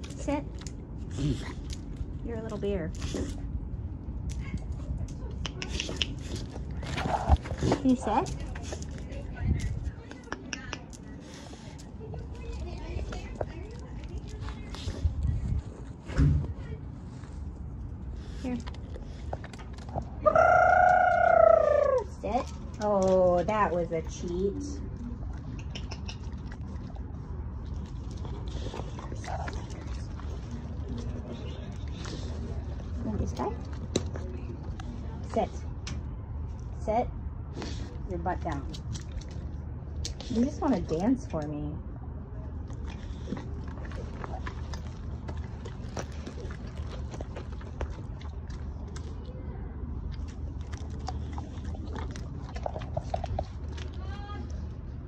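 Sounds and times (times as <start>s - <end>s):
dog claws clicking on concrete: 4.2s - 15.0s, 25.4s - 27.0s
dog whining: 20.2s - 22.1s.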